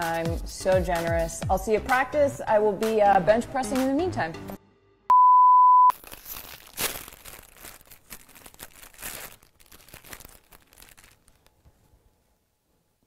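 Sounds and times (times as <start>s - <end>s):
plastic wrapper crinkling and tearing: 5.9s - 11.8s.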